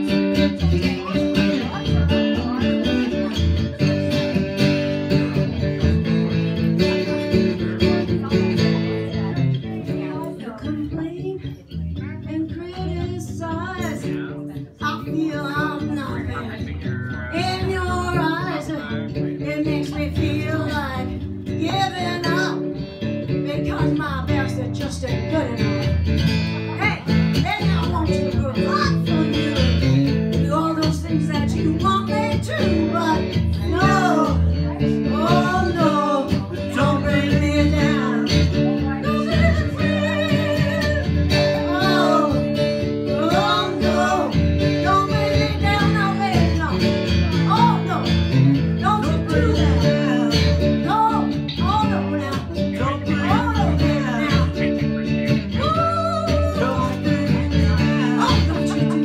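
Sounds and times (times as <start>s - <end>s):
woman singing into a microphone: 0.0s - 4.4s, 7.6s - 16.7s, 17.3s - 22.8s, 23.4s - 26.0s, 26.8s - 48.1s, 48.8s - 59.0s
strummed acoustic guitar: 0.0s - 59.0s.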